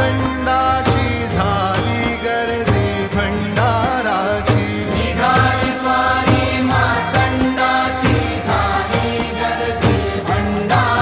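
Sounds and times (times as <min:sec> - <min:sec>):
steady percussion beat: 0:00.0 - 0:11.0.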